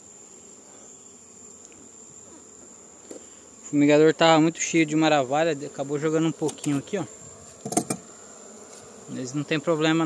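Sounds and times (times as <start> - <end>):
honeybees buzzing: 0.0 - 10.0
scuffing rustle: 6.7 - 7.7, 8.6 - 9.0.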